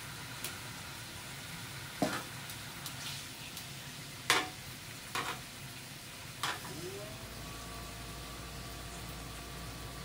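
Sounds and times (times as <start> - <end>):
meat sizzling on grill: 0.0 - 10.0.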